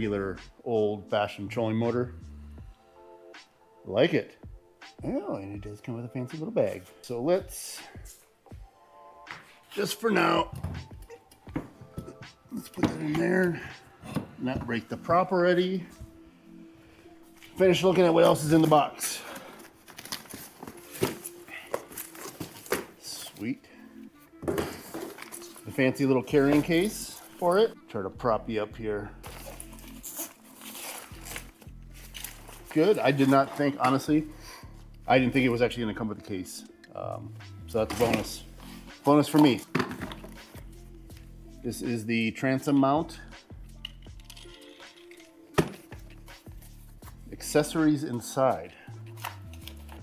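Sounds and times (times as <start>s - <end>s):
soft background music: 0.0s - 50.0s.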